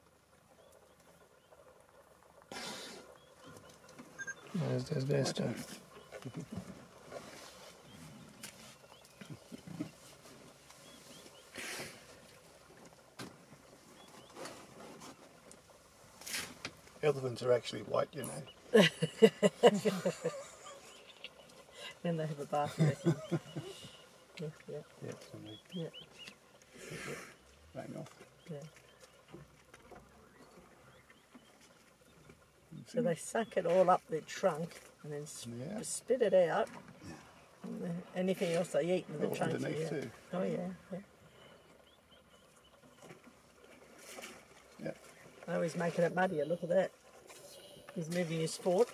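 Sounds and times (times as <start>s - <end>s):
elephant blowing mud from trunk: 2.5s - 3.2s, 10.8s - 12.2s, 26.7s - 27.4s
elephant grunting: 26.7s - 27.5s
people murmuring: 38.8s - 41.1s.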